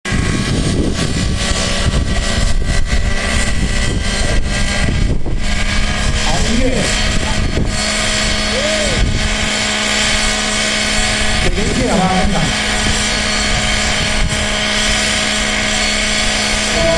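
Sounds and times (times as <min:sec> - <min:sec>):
model helicopter engine running: 0:00.1 - 0:16.9
brief voices: 0:08.5 - 0:09.0, 0:16.7 - 0:16.9.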